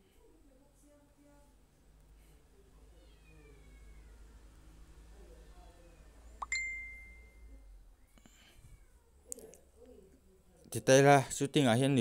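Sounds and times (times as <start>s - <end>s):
bright ding: 6.4s - 7.3s.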